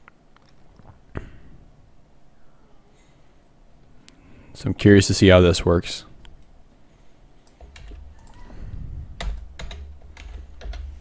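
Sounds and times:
computer keyboard keystrokes: 0:07.4 - 0:08.4, 0:09.2 - 0:11.0.

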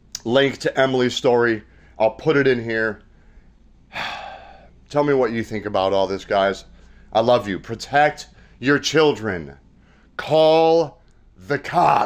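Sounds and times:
man speaking: 0:00.1 - 0:03.0, 0:04.9 - 0:09.6, 0:10.2 - 0:12.0
man breathing: 0:01.6 - 0:02.0, 0:03.1 - 0:04.9, 0:06.7 - 0:07.2, 0:08.3 - 0:08.6, 0:09.7 - 0:10.2.

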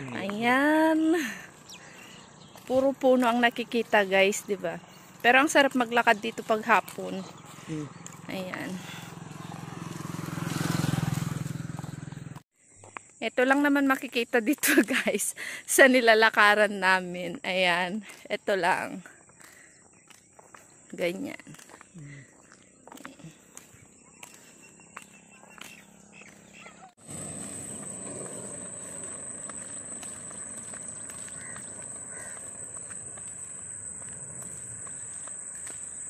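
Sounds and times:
steady outdoor background: 0:00.0 - 0:36.0
vehicle engine passing by: 0:06.1 - 0:12.4, 0:24.8 - 0:36.0
high-pitched insect drone: 0:27.0 - 0:36.0.

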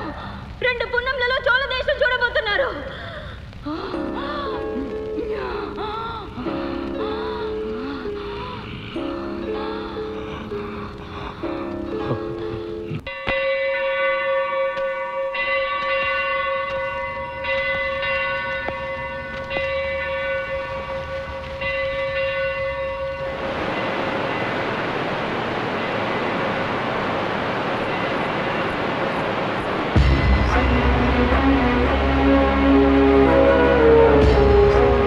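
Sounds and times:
steady rushing roar: 0:16.9 - 0:35.0
long horn-like blast: 0:30.0 - 0:35.0.

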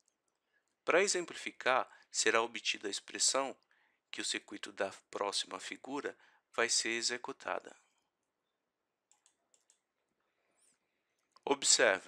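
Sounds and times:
faint short clicks: 0:09.1 - 0:09.8.

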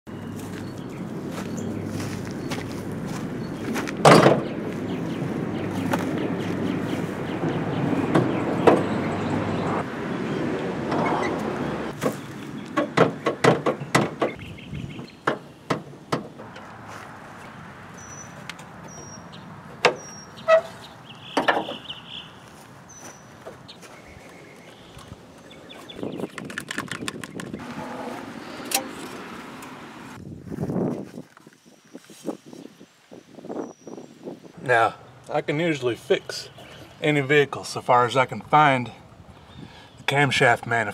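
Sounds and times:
hood clunk: 0:03.7 - 0:04.6, 0:10.8 - 0:16.8, 0:18.3 - 0:21.8
metal and plastic parts rattling: 0:26.2 - 0:27.6.

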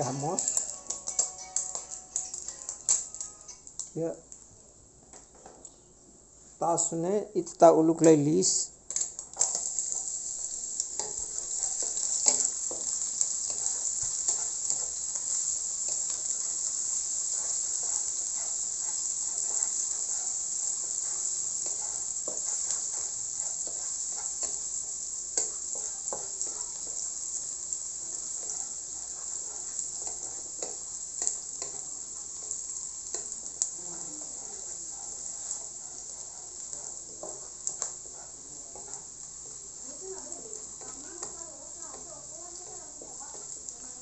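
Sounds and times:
onion sizzling in hot oil: 0:00.0 - 0:04.4, 0:06.6 - 0:44.0
wooden spatula scraping a pan: 0:08.9 - 0:44.0.

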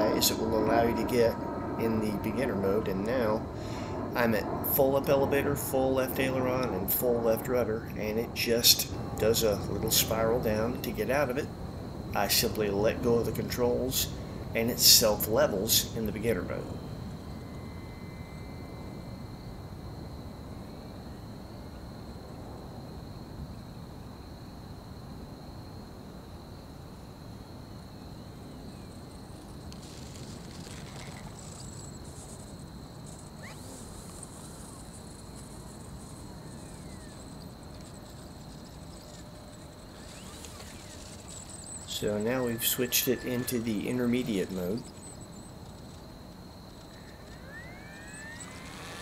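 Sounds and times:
insects chirring: 0:00.0 - 0:49.0
low background hiss: 0:00.0 - 0:49.0.

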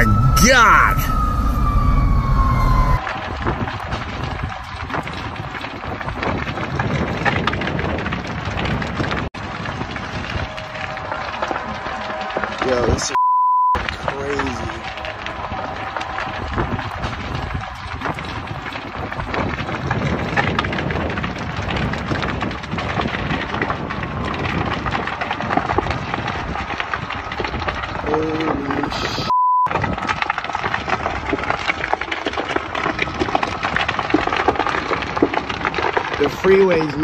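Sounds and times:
fire crackling and popping: 0:00.0 - 0:37.0.

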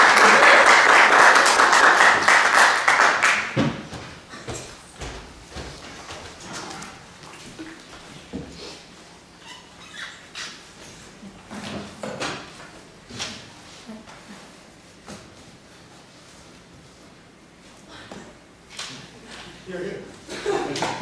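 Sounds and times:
audience applauding: 0:00.0 - 0:03.6.

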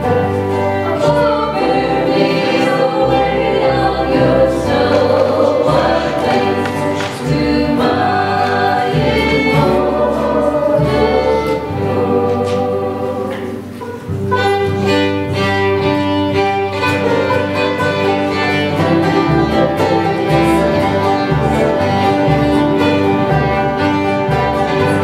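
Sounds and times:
women singing together: 0:00.0 - 0:14.4
acoustic guitar: 0:00.0 - 0:25.0
banjo: 0:00.0 - 0:25.0
fiddle: 0:00.0 - 0:25.0
upright bass walking: 0:00.0 - 0:25.0.

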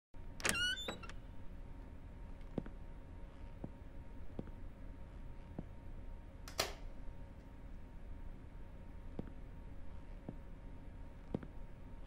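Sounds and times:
low steady hum: 0:00.2 - 0:12.0.

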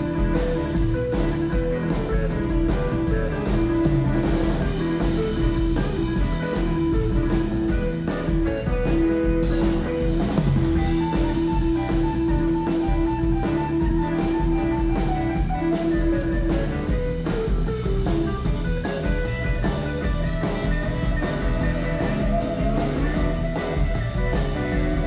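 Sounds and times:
bass guitar: 0:00.0 - 0:25.0
drum kit beat: 0:00.0 - 0:25.0
electric guitar lead: 0:00.0 - 0:25.0.

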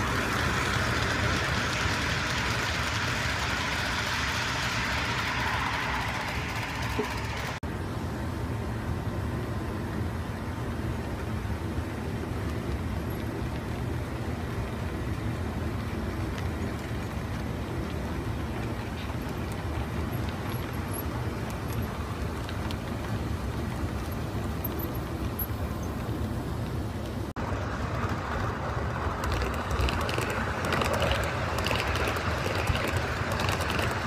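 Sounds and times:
model train wheels rumbling on rails: 0:00.0 - 0:07.6, 0:10.0 - 0:34.0.

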